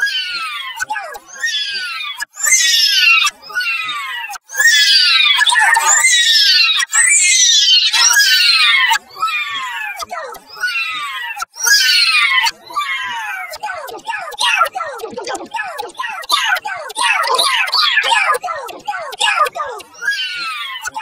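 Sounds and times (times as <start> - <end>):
vocoded high voice saying no: 0.4 - 1.9, 8.0 - 21.0.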